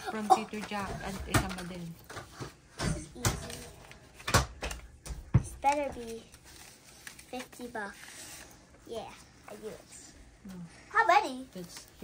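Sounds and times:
paper rustle: 0.0 - 2.6, 3.4 - 4.8, 5.6 - 9.8, 11.4 - 12.0.

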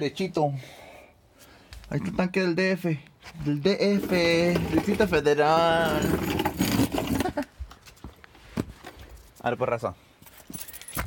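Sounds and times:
person speaking: 1.9 - 6.4.

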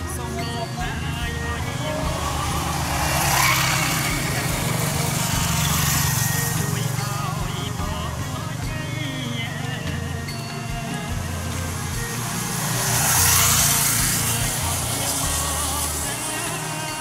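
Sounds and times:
faint voices: 0.0 - 17.0
motorbike passing: 0.0 - 17.0.

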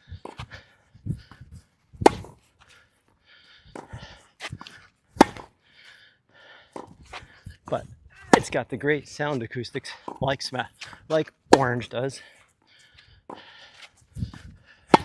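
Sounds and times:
tennis ball on racket strings: 2.0 - 2.4, 4.5 - 5.5, 6.7 - 7.0, 7.7 - 8.6, 10.0 - 11.9.

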